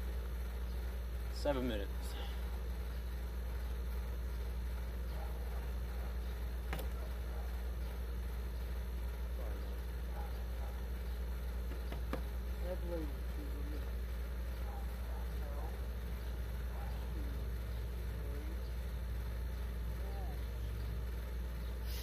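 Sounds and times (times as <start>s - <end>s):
low background hum: 0.0s - 22.0s
faint indistinct voices: 12.6s - 19.0s.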